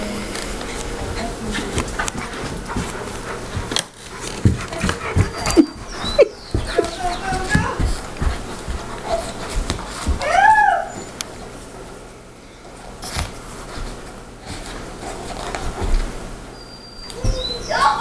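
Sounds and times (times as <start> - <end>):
thumps and scuffles on carpet: 1.5 - 10.3
dog whining: 4.8 - 7.6, 9.1 - 9.4, 10.1 - 11.2, 16.5 - 18.0.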